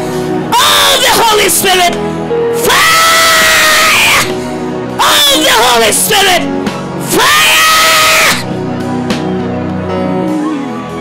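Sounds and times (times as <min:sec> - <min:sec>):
music with held notes: 0:08.4 - 0:11.0.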